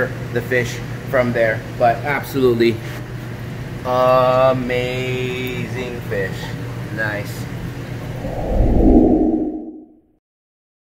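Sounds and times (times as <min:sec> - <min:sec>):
low whoosh: 0:08.1 - 0:10.0.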